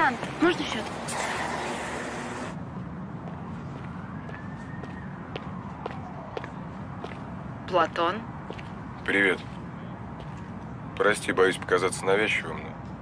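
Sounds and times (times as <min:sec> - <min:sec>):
low traffic rumble: 0:00.0 - 0:13.0
hiss of passing traffic: 0:00.4 - 0:02.6
light footsteps: 0:02.8 - 0:07.6, 0:08.3 - 0:11.7.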